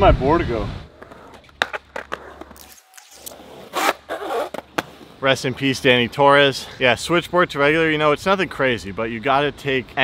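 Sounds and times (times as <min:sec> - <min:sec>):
skateboard clacks: 0:00.9 - 0:02.6
skateboard scraping on coping: 0:00.9 - 0:05.7.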